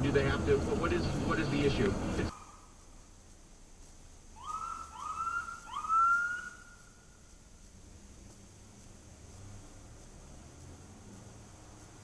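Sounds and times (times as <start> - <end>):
police siren whoops: 4.4 - 6.6.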